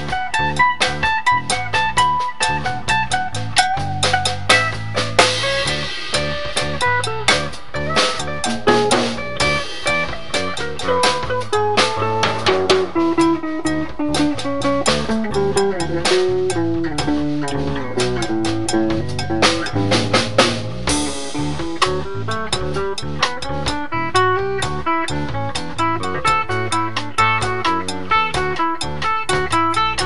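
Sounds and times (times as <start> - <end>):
drumming on snare and cymbals: 0.0 - 30.0
melodic guitar line: 0.0 - 30.0.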